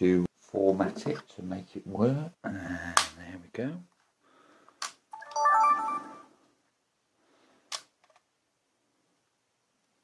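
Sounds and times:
camcorder power-on chime: 5.2s - 6.3s.

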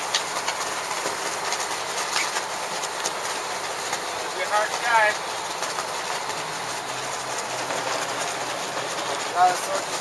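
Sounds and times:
low boat engine hum: 0.0s - 10.0s.

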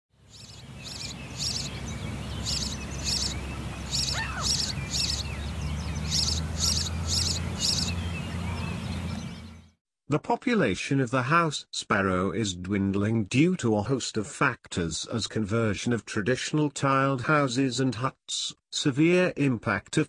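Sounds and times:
sparrow chirping: 0.2s - 9.7s.

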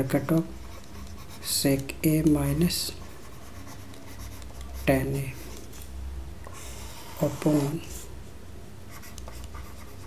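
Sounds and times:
steady low hum: 0.0s - 10.0s
stylus scratching on a tablet: 0.1s - 1.7s, 2.7s - 5.6s, 6.6s - 8.1s, 8.9s - 10.0s.

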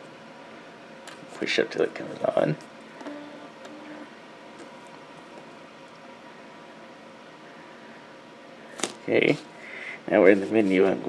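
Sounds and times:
faint hiss and hum: 0.0s - 11.0s.

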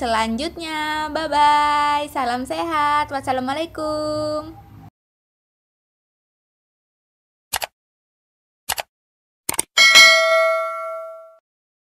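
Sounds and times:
notification bell chime: 9.8s - 11.4s.

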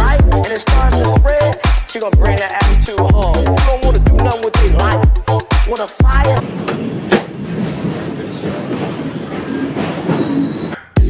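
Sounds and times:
subway car rattling: 5.7s - 11.0s
high wheel squeals: 6.4s - 11.0s.

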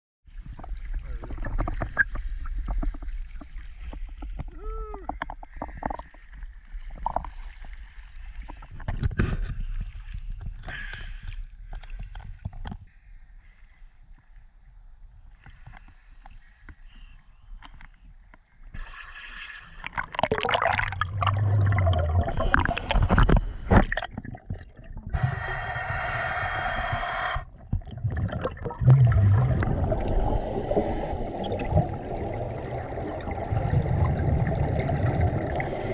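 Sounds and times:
water sloshing and splashing: 18.7s - 26.0s, 27.5s - 35.9s
low bubbling rumble: 20.0s - 35.9s
breathing through a regulator: 22.2s - 23.9s, 25.1s - 27.5s, 30.0s - 32.0s, 35.5s - 35.9s.

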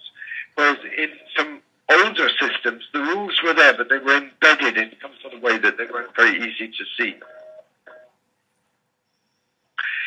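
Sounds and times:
man's voice: 0.0s - 7.3s, 9.8s - 10.0s.

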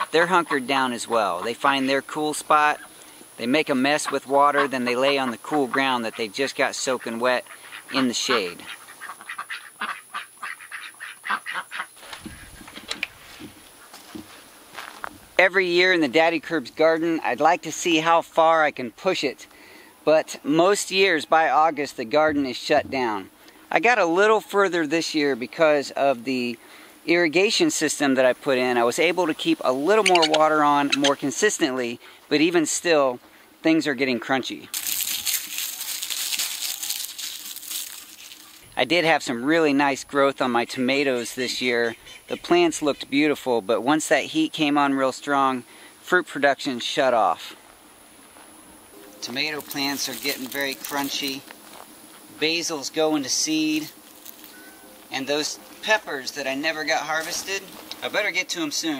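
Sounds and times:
ducks quacking: 0.0s - 3.0s, 3.7s - 14.2s, 27.4s - 31.8s
dry leaves crackling in hand: 34.7s - 38.9s, 49.1s - 58.8s.

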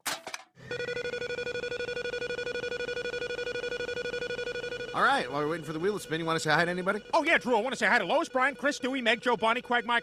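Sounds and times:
whirring hum: 0.6s - 10.0s.

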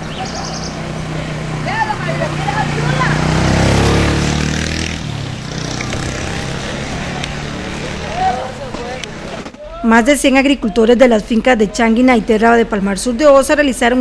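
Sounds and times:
vehicle engine running: 0.0s - 9.6s
people talking in street: 0.0s - 14.0s.

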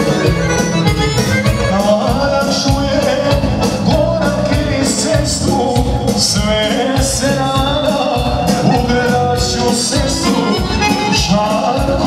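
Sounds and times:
steady drum beat: 0.0s - 12.0s
man singing into microphone: 1.4s - 12.0s.

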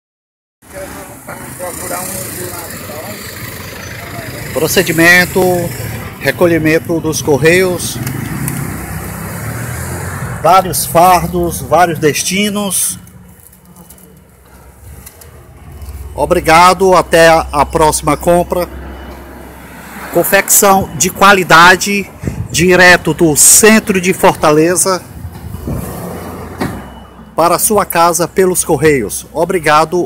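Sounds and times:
indistinct voices: 0.6s - 8.8s
traffic rumble and hiss: 0.6s - 30.0s.

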